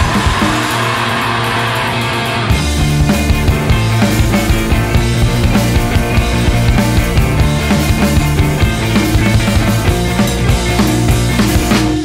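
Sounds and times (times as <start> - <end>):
electric guitars ringing chord: 0.0 - 12.0.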